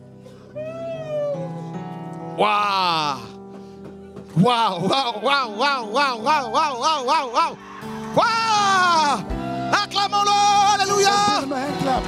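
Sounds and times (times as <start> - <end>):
soft sustained chord music: 0.0 - 12.0.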